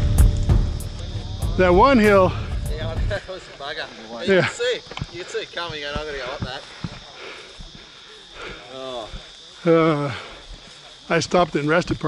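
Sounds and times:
man's voice: 0:00.8 - 0:06.6.

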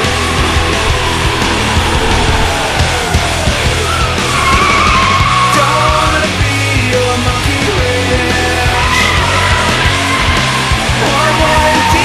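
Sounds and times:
car tires squealing: 0:00.0 - 0:06.0, 0:08.6 - 0:12.0
heavy rock music: 0:00.0 - 0:12.0.

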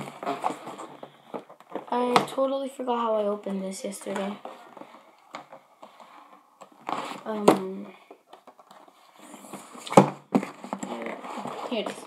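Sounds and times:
cardboard box rustling: 0:00.0 - 0:01.9, 0:08.5 - 0:12.0.

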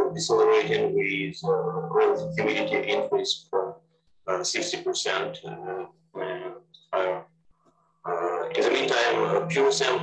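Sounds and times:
man's hesitant utterances: 0:04.3 - 0:07.2, 0:08.1 - 0:10.0.

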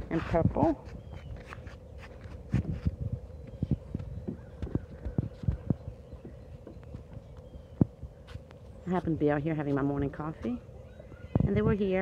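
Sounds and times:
footsteps on deck floor: 0:00.0 - 0:10.6.

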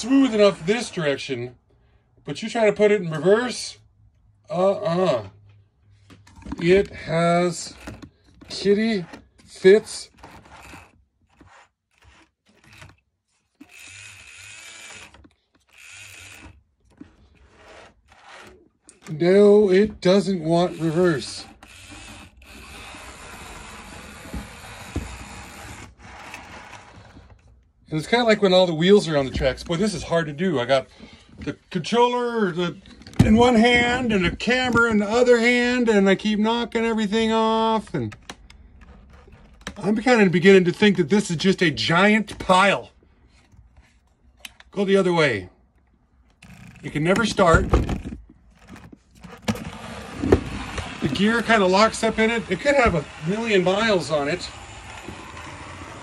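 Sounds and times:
model locomotive motor whirring: 0:10.2 - 0:18.6, 0:20.4 - 0:27.4, 0:49.2 - 0:56.0
wheels rolling on rails: 0:46.4 - 0:56.0.

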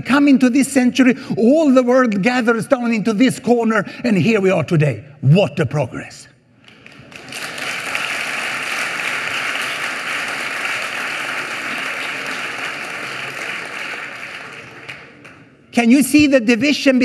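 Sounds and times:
audience applause: 0:06.7 - 0:15.6.

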